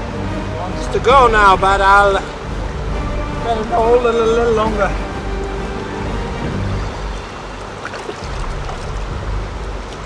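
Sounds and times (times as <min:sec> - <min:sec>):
river rapids roaring: 0:00.0 - 0:10.0.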